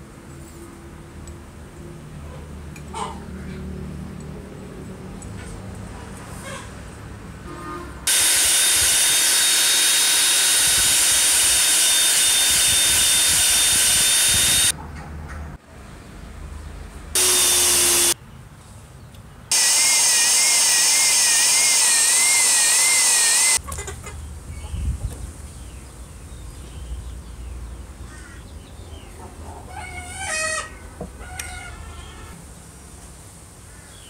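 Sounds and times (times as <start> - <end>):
disc sander running with high whine: 8.1 - 14.7, 17.2 - 18.2, 19.5 - 23.6.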